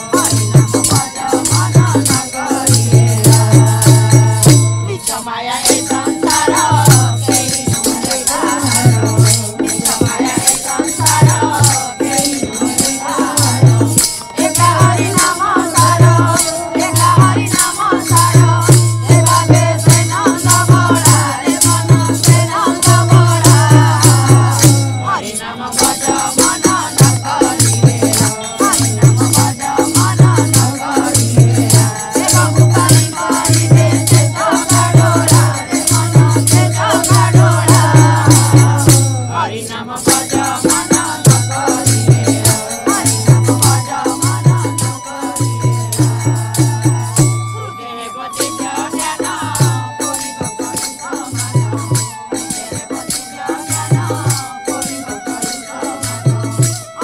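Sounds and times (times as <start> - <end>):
drum beat: 0.0 - 39.3, 40.0 - 47.7, 48.4 - 57.0
rhythmic percussion strikes: 0.0 - 57.0
wavering melody: 0.0 - 57.0.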